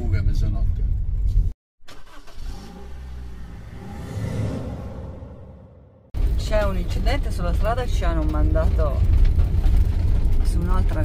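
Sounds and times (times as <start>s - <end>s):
vehicle engine humming: 2.0s - 11.0s
rushing noise: 2.6s - 6.6s.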